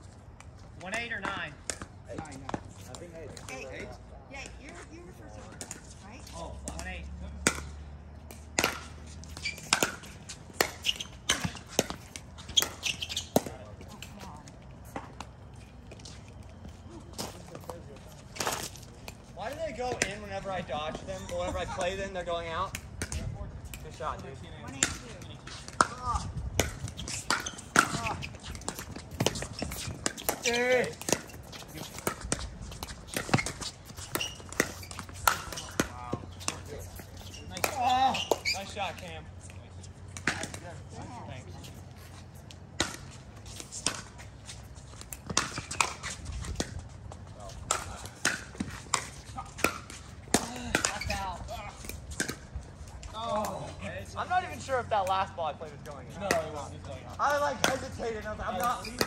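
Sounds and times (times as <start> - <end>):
ball bouncing on court: 6.6 - 14.3, 26.6 - 38.9
players calling out: 23.9 - 42.1.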